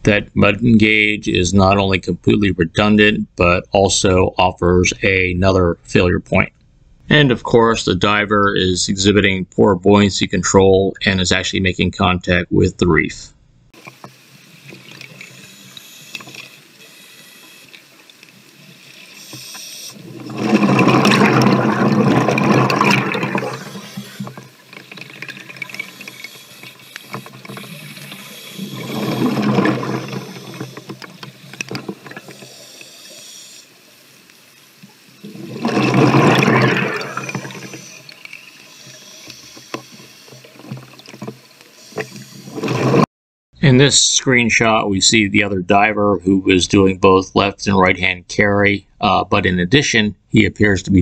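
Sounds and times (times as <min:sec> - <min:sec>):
regulator hiss and bubbly crackle: 0:13.7 - 0:43.1
diver exhaling bubbles: 0:19.9 - 0:26.4, 0:27.4 - 0:30.9, 0:35.2 - 0:38.2.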